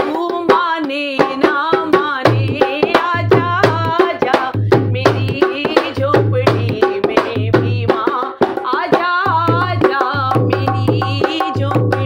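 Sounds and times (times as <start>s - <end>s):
hand drum rhythm: 0.0s - 12.0s
woman singing: 0.0s - 12.0s.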